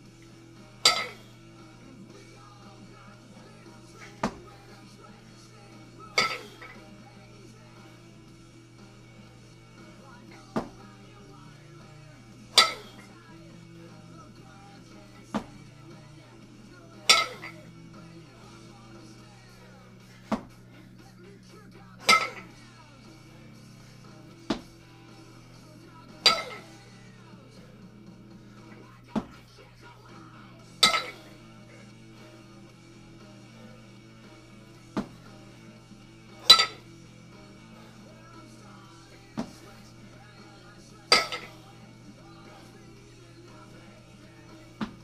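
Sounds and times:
faint music: 0.0s - 45.0s
steady low hum: 0.0s - 45.0s
kettlebells clinking together: 0.8s - 1.2s, 6.2s - 6.8s, 12.6s - 13.0s, 17.1s - 17.6s, 22.0s - 22.5s, 26.2s - 26.7s, 30.8s - 31.3s, 36.4s - 36.9s, 41.1s - 41.6s.

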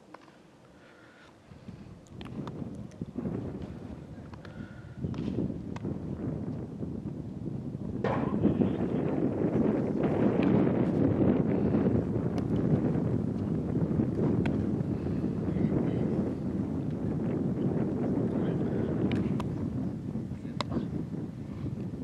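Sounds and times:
wind buffeting microphone: 1.4s - 22.0s
sharp knocks: 8.0s - 8.6s.

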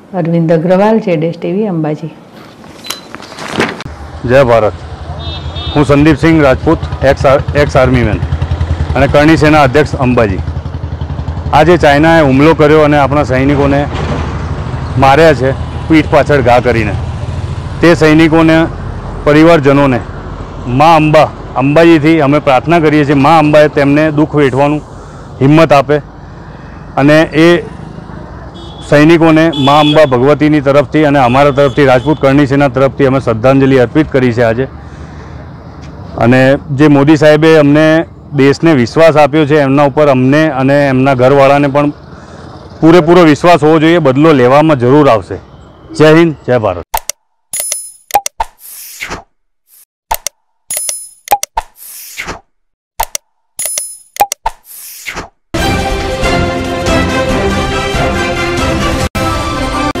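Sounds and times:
street noise: 0.0s - 60.0s
man speaking: 4.2s - 4.8s
pop and click effects: 46.9s - 49.3s, 50.1s - 52.4s, 53.0s - 55.4s
upbeat theme music: 55.6s - 60.0s.

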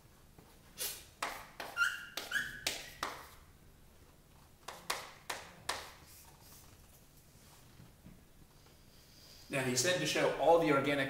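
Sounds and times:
chalk squeaking: 0.8s - 3.4s
chalk tapping on chalkboard: 1.2s - 3.4s, 4.6s - 6.1s.

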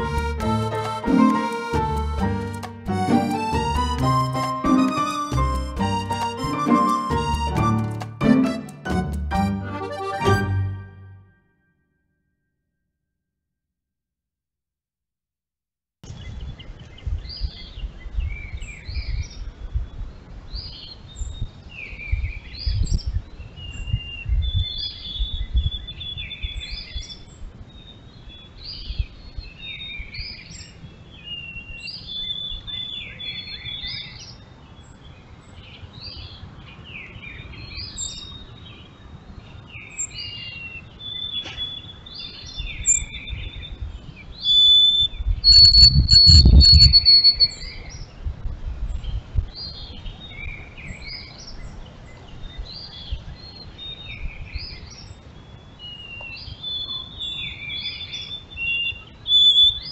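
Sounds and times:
songbirds singing: 16.1s - 59.9s.

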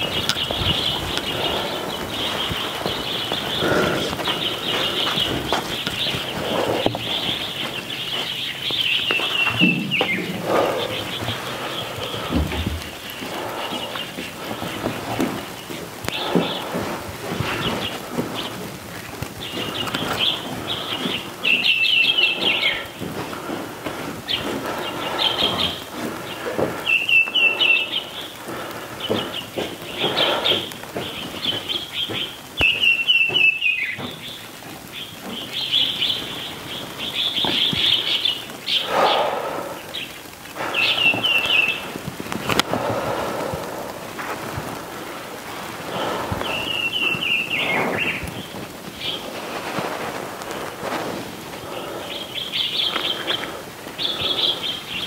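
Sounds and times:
songbirds chirping: 0.0s - 55.0s.

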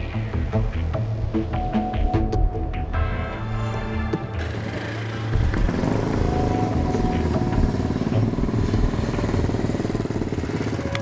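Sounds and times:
motorcycle engine revving: 4.2s - 11.0s.

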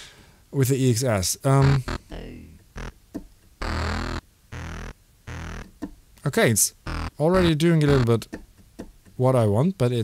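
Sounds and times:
short synth notes: 1.6s - 3.0s, 3.6s - 5.7s, 6.9s - 8.2s.

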